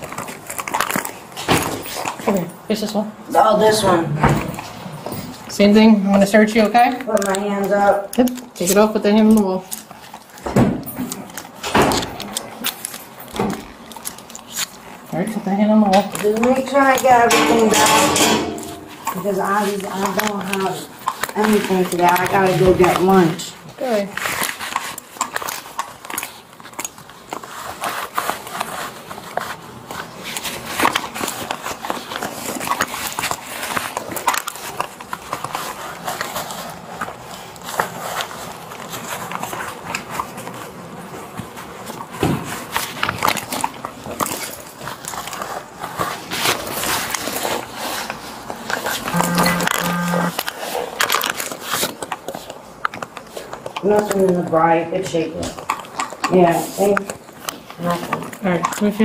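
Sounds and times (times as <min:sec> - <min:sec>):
short low beeps: 0:49.1 - 0:50.3.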